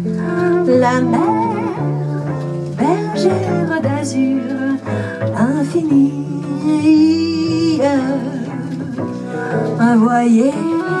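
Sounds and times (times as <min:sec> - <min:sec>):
acoustic jazz band: 0:00.0 - 0:11.0
woman singing with vibrato: 0:00.0 - 0:11.0.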